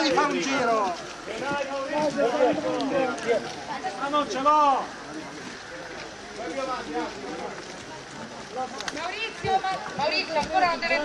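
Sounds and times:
men talking in background: 0:00.0 - 0:11.0.

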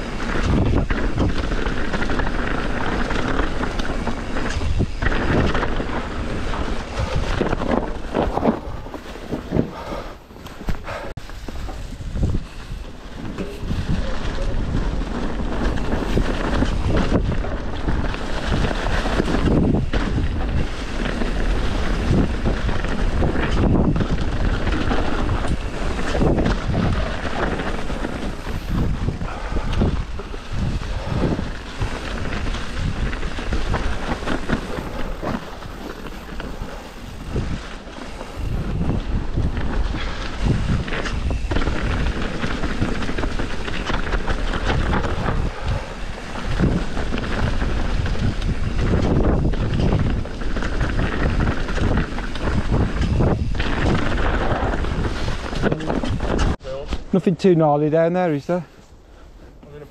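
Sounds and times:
bike knocks and rattles: 0:00.0 - 0:57.1
tyres rumbling on dirt: 0:00.0 - 0:58.6
wind buffeting microphone: 0:00.0 - 0:59.9.

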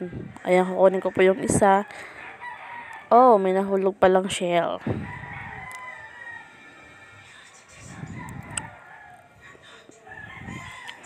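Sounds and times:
rooster crowing: 0:01.0 - 0:03.3, 0:04.9 - 0:11.0.

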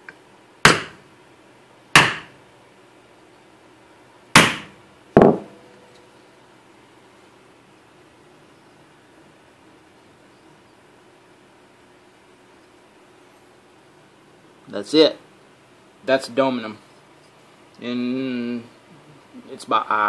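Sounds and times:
bowling ball thudding on metal: 0:04.4 - 0:05.8.

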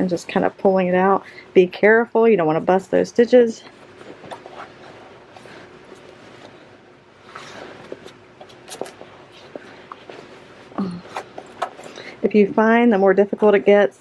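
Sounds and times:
fabric rustling and rubbing: 0:03.7 - 0:11.9.

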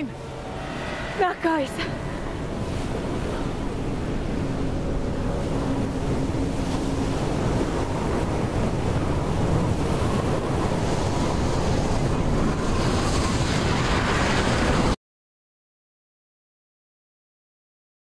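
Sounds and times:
sea waves rushing: 0:00.0 - 0:15.0
wind: 0:00.0 - 0:15.0.

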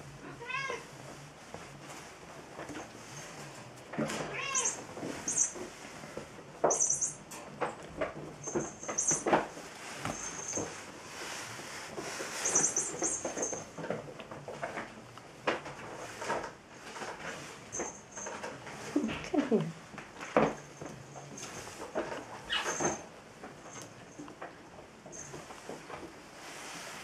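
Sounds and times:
knocks and scuffling: 0:00.7 - 0:27.0.

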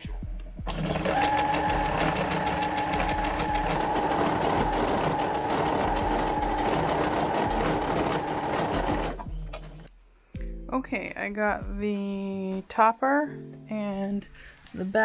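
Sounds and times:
sewing machine stitching: 0:00.6 - 0:09.3.

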